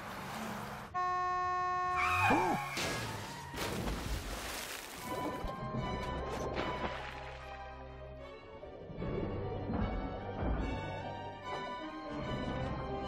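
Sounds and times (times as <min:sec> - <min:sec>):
car crash: 0:02.6 - 0:04.6
rushing splashing water: 0:03.1 - 0:05.4
music: 0:05.0 - 0:13.0.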